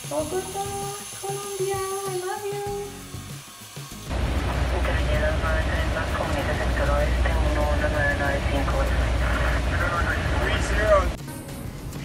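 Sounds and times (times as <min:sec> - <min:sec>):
airliner low rumble: 0:04.1 - 0:12.0
voices talking: 0:04.4 - 0:11.2.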